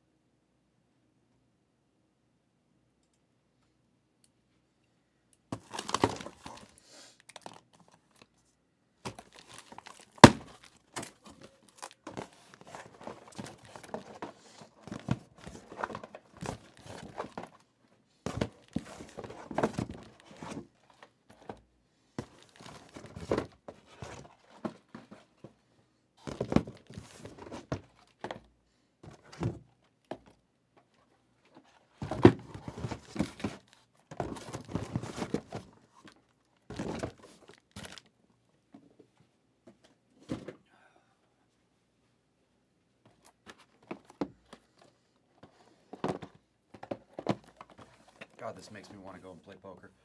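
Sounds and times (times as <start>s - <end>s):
packaging tearing and crinkling: 9.1s - 12.1s.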